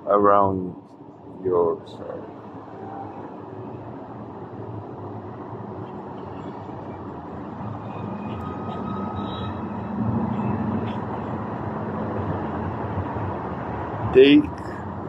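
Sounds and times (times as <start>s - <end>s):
traffic rumble: 0.0s - 15.0s.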